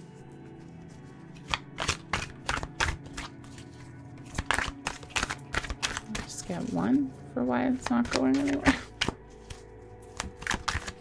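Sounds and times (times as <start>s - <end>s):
background music with held tones: 0.0s - 11.0s
cards being shuffled: 0.0s - 11.0s.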